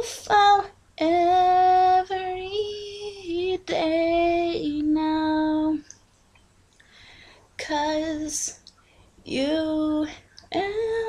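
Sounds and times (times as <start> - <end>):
woman singing unaccompanied: 0.0 - 5.9, 7.6 - 11.0.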